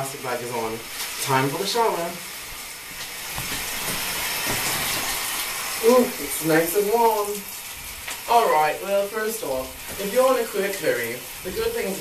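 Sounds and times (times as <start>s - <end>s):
shower spray running: 0.0s - 12.0s.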